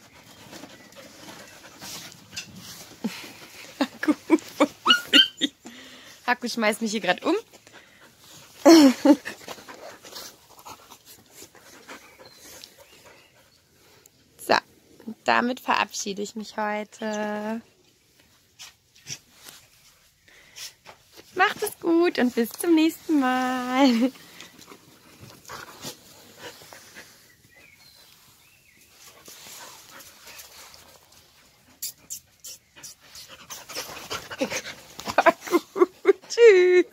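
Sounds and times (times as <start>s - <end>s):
soft rustles: 0.0s - 5.2s, 6.6s - 14.3s, 17.8s - 31.8s
puppies panting: 0.0s - 6.1s, 6.9s - 14.3s, 23.1s - 36.9s.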